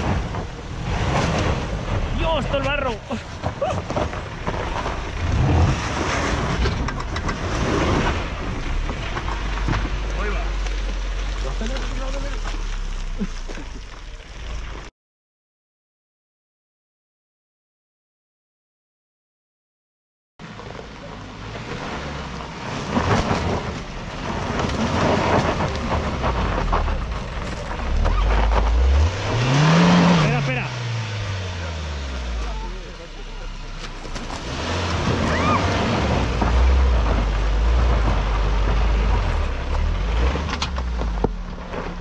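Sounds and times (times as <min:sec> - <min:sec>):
knocks from tyres and body: 0:00.0 - 0:14.0, 0:22.8 - 0:29.4, 0:33.8 - 0:42.0
car engine at low revs: 0:20.4 - 0:42.0.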